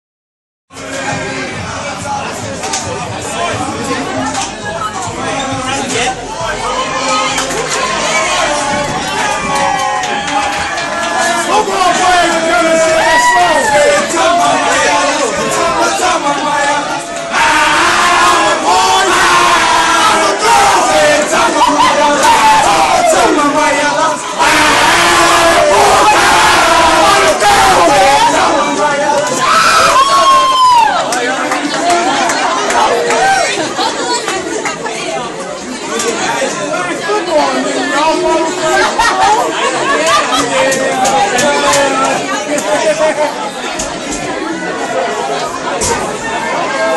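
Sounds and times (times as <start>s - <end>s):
crowd shouting and cheering: 0.7s - 46.9s.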